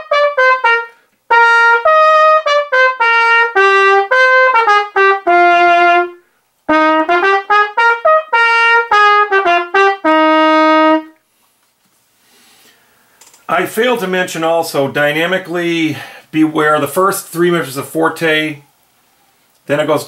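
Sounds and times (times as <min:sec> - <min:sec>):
solo trumpet march melody: 0:00.0 - 0:11.2.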